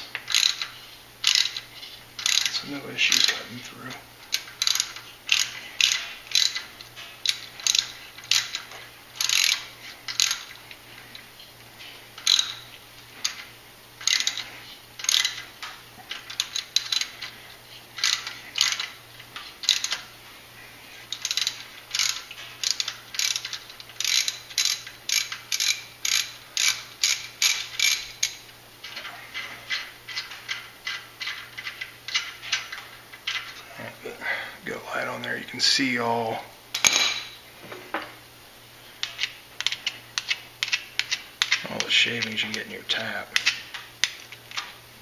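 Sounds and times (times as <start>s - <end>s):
ratchet handle clicking: 0.1s - 3.5s, 4.3s - 11.2s, 12.2s - 17.4s, 18.0s - 20.1s, 21.1s - 29.0s, 39.0s - 42.6s.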